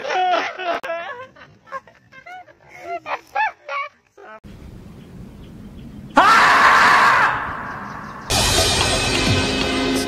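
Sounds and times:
men laughing: 0:00.0 - 0:04.4, 0:08.2 - 0:09.6
marmot screaming: 0:06.2 - 0:08.0.

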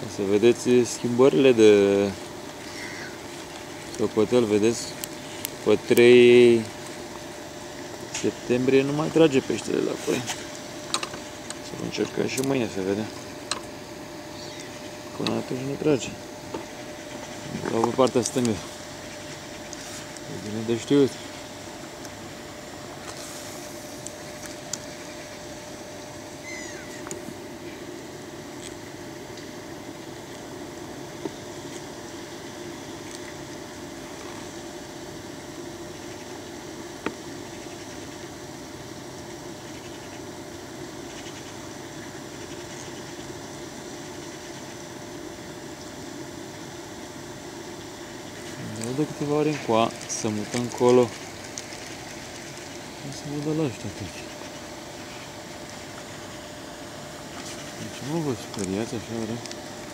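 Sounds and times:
background hum: 0:00.0 - 0:59.9
faint constant tone: 0:00.0 - 0:59.9.

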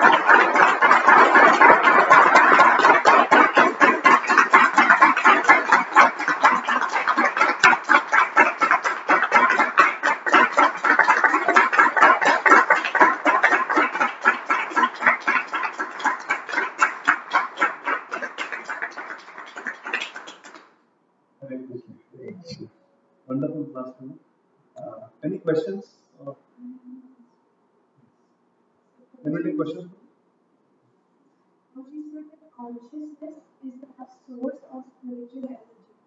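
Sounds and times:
audience applauding: 0:00.0 - 0:20.7.

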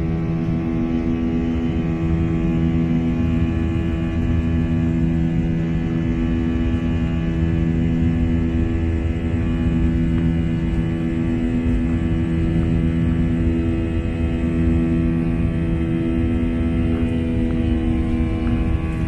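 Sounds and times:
airliner engines droning in cabin: 0:00.0 - 0:19.0.

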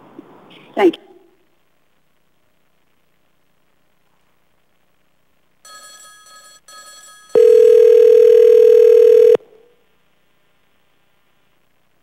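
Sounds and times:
loud steady telephone tone: 0:05.6 - 0:09.5
faint telephone tone: 0:05.6 - 0:09.6.

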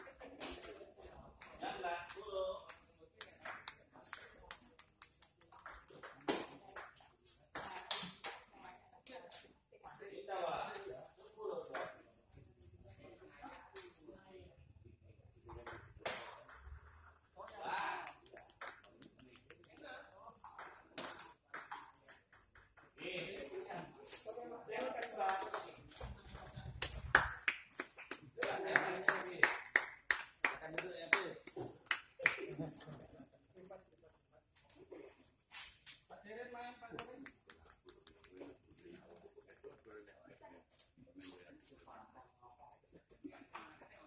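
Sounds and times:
table tennis balls bouncing: 0:00.0 - 0:12.7, 0:13.7 - 0:14.1, 0:15.4 - 0:35.0, 0:36.9 - 0:40.1
men talking: 0:17.4 - 0:18.3, 0:23.0 - 0:26.7, 0:28.2 - 0:29.6, 0:30.4 - 0:33.9.

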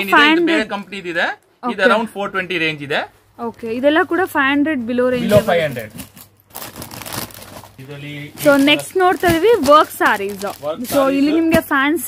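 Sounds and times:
plastic covers crinkling: 0:05.2 - 0:12.0.

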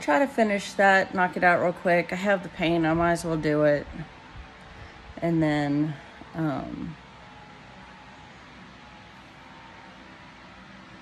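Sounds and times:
electric fan running: 0:00.0 - 0:11.0.

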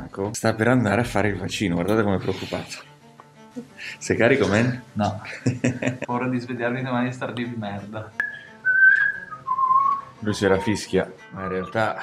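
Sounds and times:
person whistling: 0:08.2 - 0:12.0.

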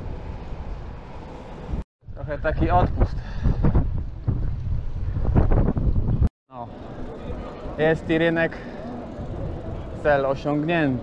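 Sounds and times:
wind buffeting microphone: 0:01.5 - 0:06.3, 0:08.8 - 0:10.2.

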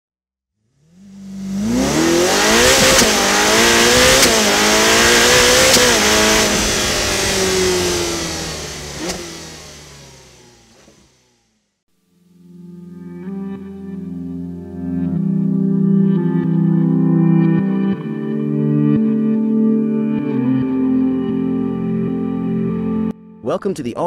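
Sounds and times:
car engine accelerating hard: 0:00.6 - 0:11.7.

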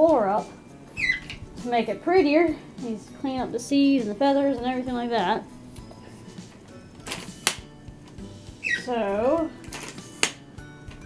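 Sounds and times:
tripod handling rustle: 0:06.5 - 0:08.7, 0:09.6 - 0:11.0.

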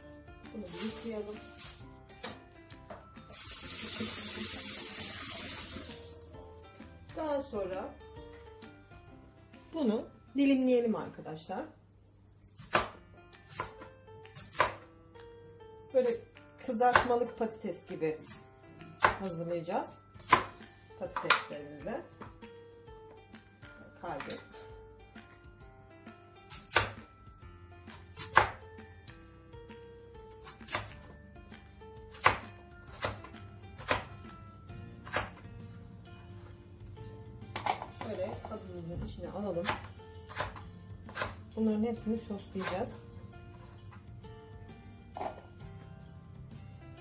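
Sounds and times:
quiet background music: 0:00.0 - 0:47.0
slicer chopping potato on plastic board: 0:12.6 - 0:14.8, 0:39.6 - 0:41.4, 0:42.5 - 0:43.0
potato cutter chopping on plastic board: 0:39.6 - 0:41.4.

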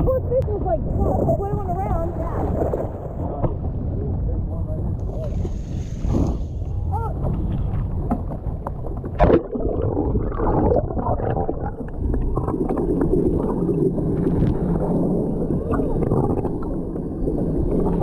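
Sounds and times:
muffled underwater water noise: 0:00.0 - 0:18.0
wind: 0:00.0 - 0:18.0
choppy seawater rushing: 0:09.1 - 0:18.0.

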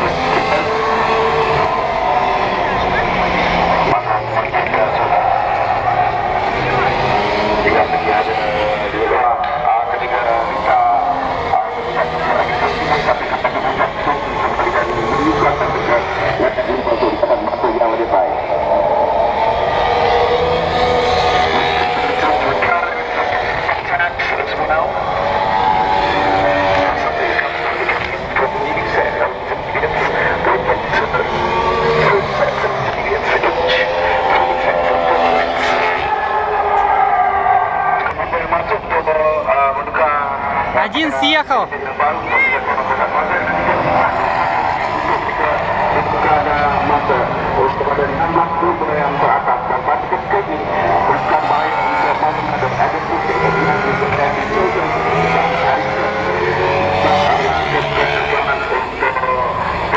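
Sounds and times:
racing cars passing: 0:00.0 - 0:59.9.

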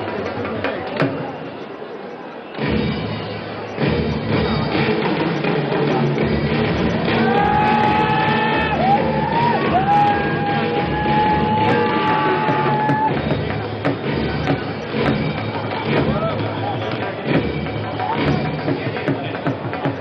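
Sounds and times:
crowd noise: 0:00.0 - 0:20.0
music over loudspeakers: 0:02.5 - 0:20.0.

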